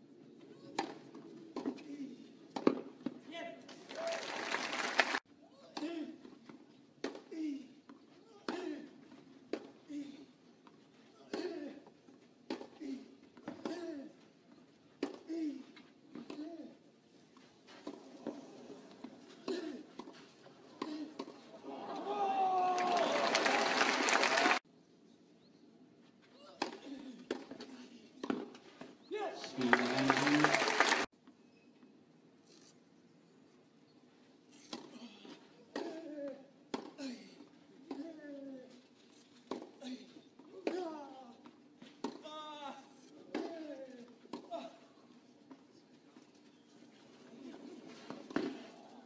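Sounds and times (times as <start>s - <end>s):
crowd cheering: 3.8s - 5.2s, 21.5s - 24.6s, 29.4s - 31.1s
crowd applause: 3.9s - 5.2s, 22.4s - 24.6s, 29.4s - 31.1s.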